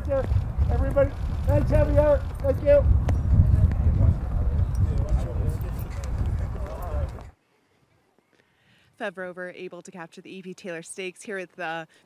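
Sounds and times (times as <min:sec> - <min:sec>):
wind on microphone: 0:00.0 - 0:07.3
horse hooves clopping: 0:00.0 - 0:07.4
voices: 0:00.0 - 0:07.4.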